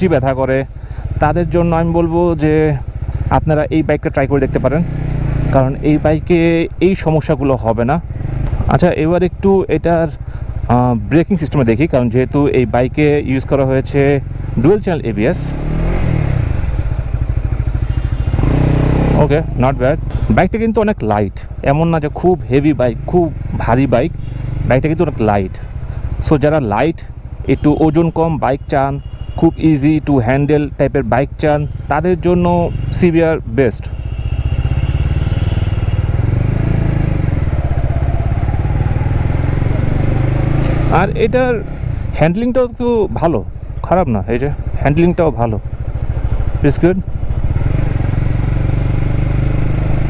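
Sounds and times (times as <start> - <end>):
motorcycle engine at low revs: 0.0 - 50.0.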